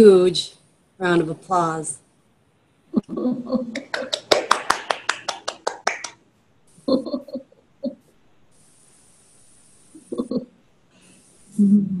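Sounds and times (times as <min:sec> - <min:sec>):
hands clapping: 0:03.7 - 0:06.2.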